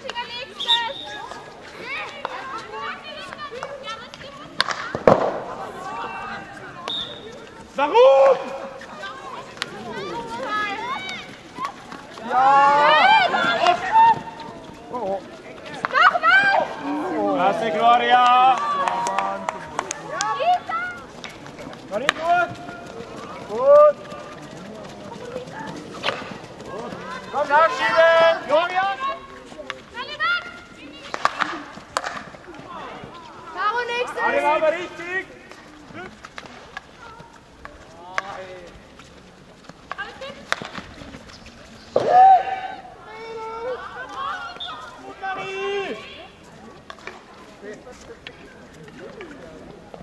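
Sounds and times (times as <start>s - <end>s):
players calling to each other: 0.0s - 4.1s, 5.6s - 21.1s, 21.9s - 31.7s, 42.0s - 46.4s
hockey stick clacking ball: 3.2s - 5.4s, 19.8s - 22.7s, 25.9s - 26.4s, 31.0s - 32.4s, 39.7s - 41.4s
sharp crack: 4.6s - 5.6s, 31.1s - 32.3s.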